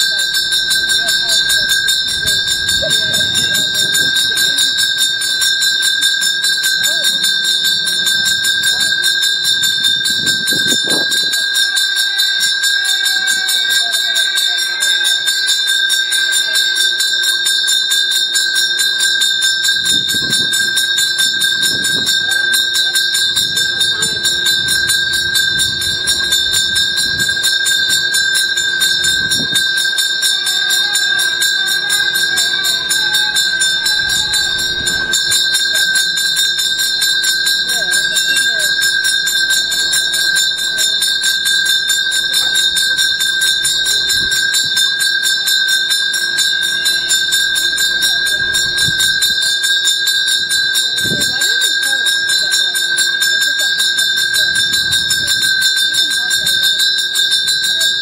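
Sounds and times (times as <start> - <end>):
bell ringing rapidly: 0.0 - 58.0
people talking quietly: 0.0 - 58.0.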